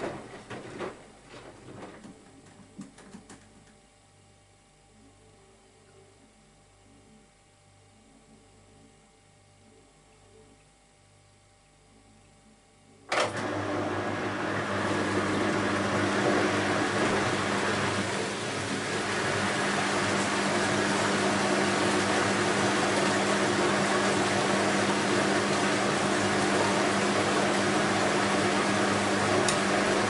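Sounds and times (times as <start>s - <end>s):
washing machine pump hum: 0.0s - 3.9s, 13.1s - 30.0s.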